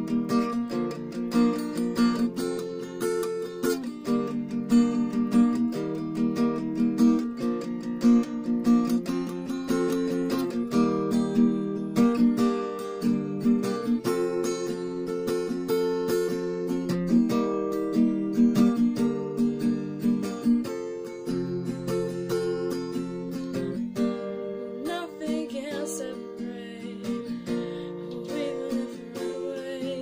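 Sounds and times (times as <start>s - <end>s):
acoustic guitar strumming: 0.0s - 30.0s.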